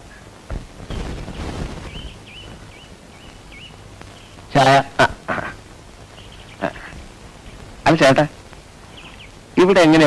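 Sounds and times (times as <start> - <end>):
brief rustling: 0.5 - 3.4
small bird chirping: 0.8 - 5.0, 5.6 - 9.8.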